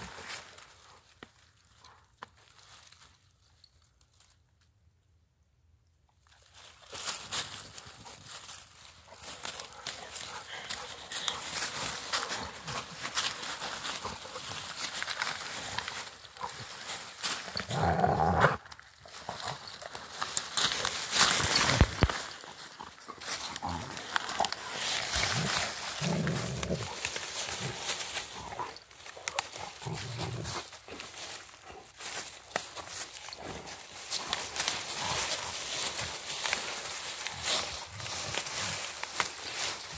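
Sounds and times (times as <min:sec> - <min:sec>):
dry leaves crackling and rustling: 0:00.0 - 0:04.4, 0:06.2 - 0:39.9
dogs growling in play: 0:09.5 - 0:19.7, 0:22.6 - 0:28.8
dogs growling playfully: 0:17.4 - 0:18.6, 0:22.6 - 0:28.8.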